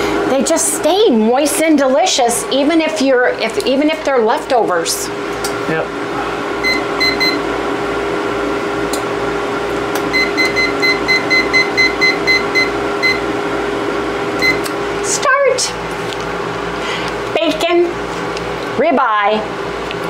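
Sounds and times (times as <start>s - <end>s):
digital kitchen timer beeping: 6.6s - 7.4s, 10.1s - 13.2s, 14.4s - 14.7s.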